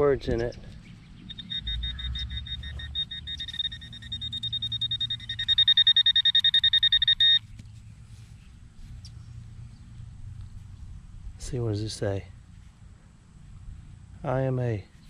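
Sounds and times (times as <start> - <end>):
pinpointer beeping in quick pulses: 1.3 - 7.5.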